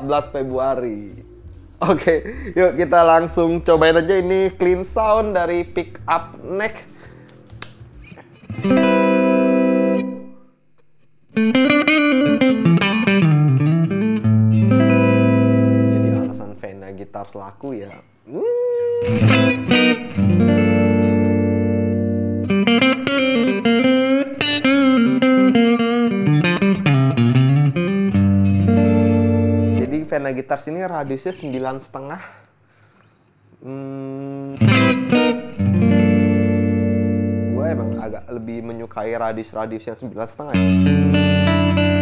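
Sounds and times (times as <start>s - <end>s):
clean electric guitar playing: 0.0s - 16.6s, 19.0s - 30.2s, 34.5s - 38.6s, 40.5s - 42.0s.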